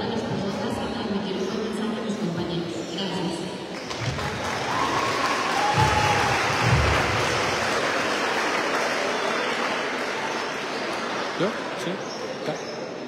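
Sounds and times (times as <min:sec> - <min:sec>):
audience applauding: 0:03.7 - 0:12.0.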